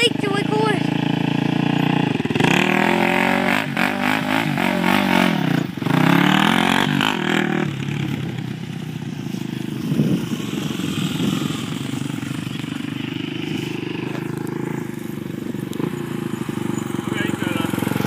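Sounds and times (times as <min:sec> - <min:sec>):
quad engine revving: 0:00.0 - 0:18.0
wheels spinning in mud: 0:00.0 - 0:18.0.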